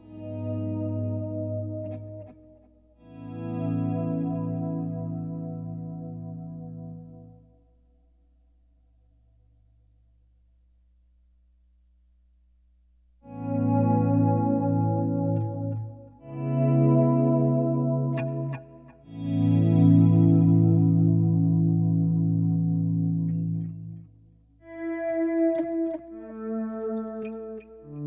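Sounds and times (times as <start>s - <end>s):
clean electric guitar chords: 0.0s - 7.6s, 13.2s - 28.0s.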